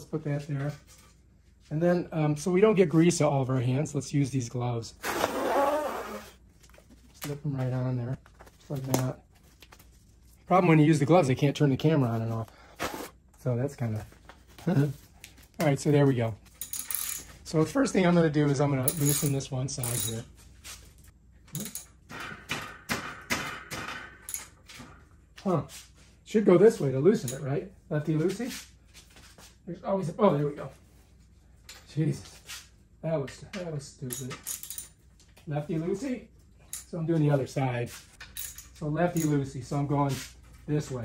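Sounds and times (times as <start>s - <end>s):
rubber glove pulled on: 5.0s - 6.4s, 12.6s - 13.2s.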